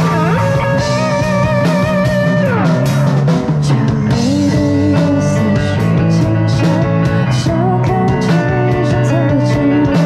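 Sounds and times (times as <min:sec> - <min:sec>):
drum and cymbal hits: 0:00.0 - 0:07.5
bass guitar: 0:00.0 - 0:10.0
electric guitars: 0:00.0 - 0:10.0.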